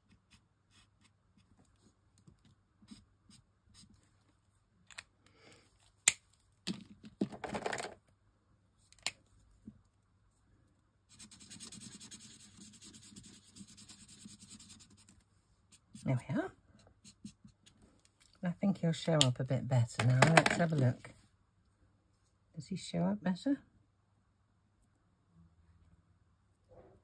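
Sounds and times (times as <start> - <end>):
marker scratching on cardstock: 11.1 - 15.1.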